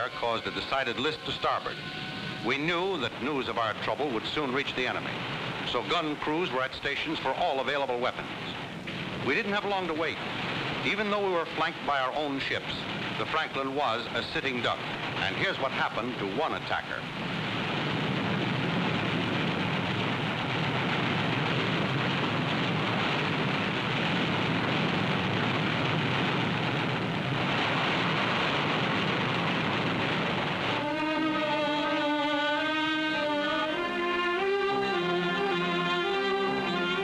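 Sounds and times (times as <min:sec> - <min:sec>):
orchestral music with strings: 0:00.0 - 0:03.2, 0:30.7 - 0:37.0
anti-aircraft gunfire: 0:00.0 - 0:33.8.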